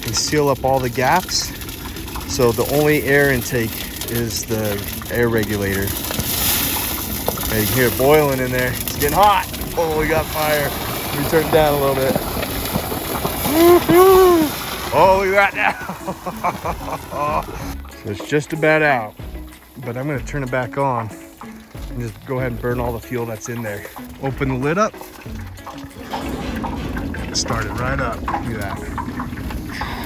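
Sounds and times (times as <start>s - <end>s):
fire rushing in pot: 0.0s - 30.0s
person exclaiming: 13.4s - 16.0s.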